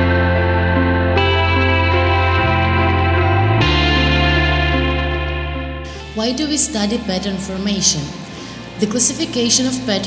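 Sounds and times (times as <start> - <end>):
sustained chords music: 0.0 - 10.0.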